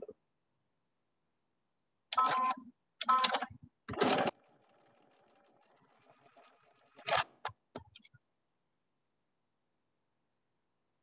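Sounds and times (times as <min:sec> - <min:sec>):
sewing machine stitching: 0:03.1 - 0:07.5.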